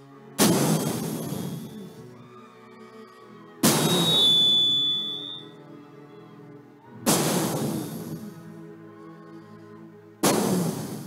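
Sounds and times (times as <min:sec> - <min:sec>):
soft sustained music: 0:00.0 - 0:11.0
loud rushing blast: 0:00.4 - 0:02.0, 0:03.6 - 0:04.8, 0:07.1 - 0:08.3, 0:10.2 - 0:11.0
thin high ring: 0:03.8 - 0:05.5.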